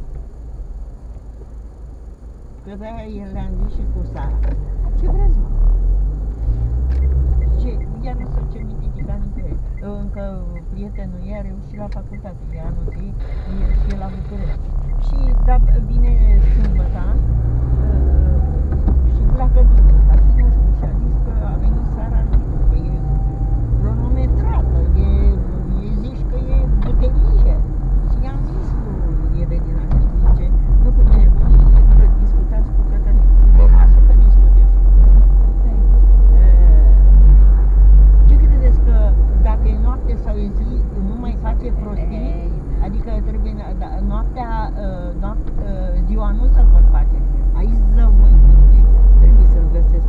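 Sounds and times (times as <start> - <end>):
car engine and road noise: 0.0 - 50.0.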